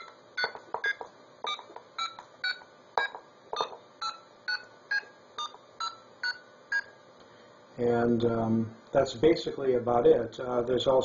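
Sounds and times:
touch-tone beeps: 0.0s - 6.9s.

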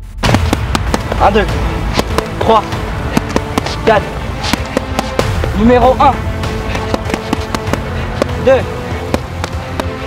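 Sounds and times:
background music: 0.0s - 10.0s
boxing gloves smacking mitts: 3.1s - 3.8s, 4.4s - 5.3s, 6.7s - 8.4s, 9.1s - 10.0s.

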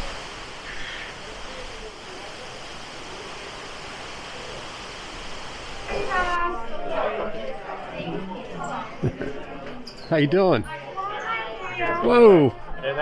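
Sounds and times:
rain: 0.0s - 8.6s.

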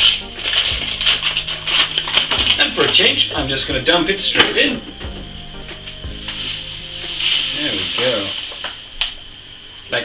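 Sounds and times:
sugar pouring through funnel: 6.2s - 9.2s.

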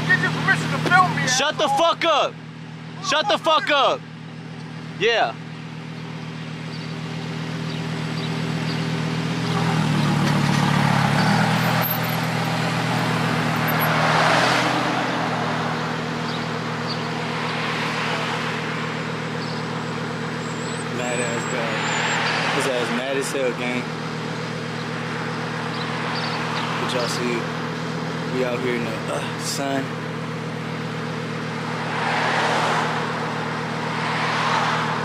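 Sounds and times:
sports car engine idling: 0.0s - 14.2s, 15.0s - 35.0s
passing traffic: 0.0s - 35.0s.

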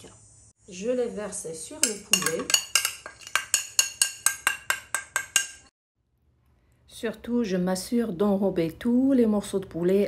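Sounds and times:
plate tapping metal bowl rim: 1.8s - 5.7s.

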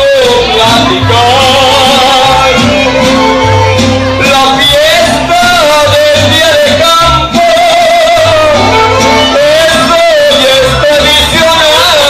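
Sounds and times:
mariachi band playing: 0.0s - 12.0s
person singing: 0.0s - 12.0s.

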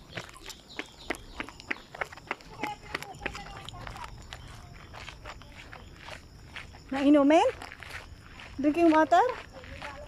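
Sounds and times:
footsteps on concrete: 0.0s - 10.0s.

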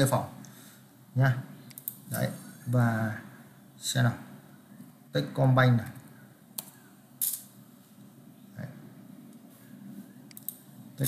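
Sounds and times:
soft noise: 6.0s - 11.0s.

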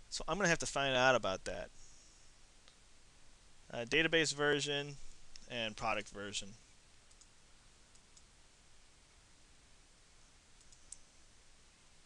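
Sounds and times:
faint room hiss: 0.0s - 12.0s
computer mouse clicks: 7.1s - 7.3s, 10.6s - 11.1s.

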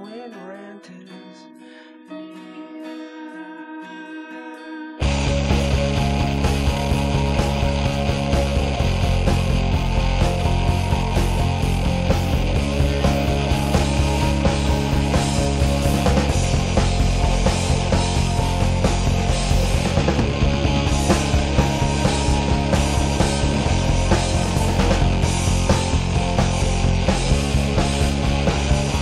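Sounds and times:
loud full-band rock: 5.0s - 29.0s.

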